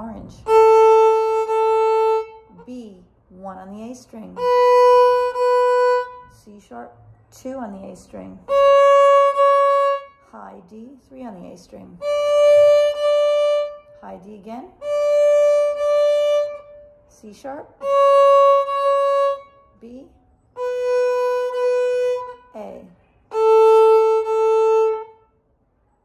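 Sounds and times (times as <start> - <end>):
viola bowing high note: 0.3 - 2.6, 4.3 - 6.4, 8.4 - 10.3, 12.0 - 14.0, 14.8 - 17.0, 17.8 - 19.8, 20.6 - 25.3.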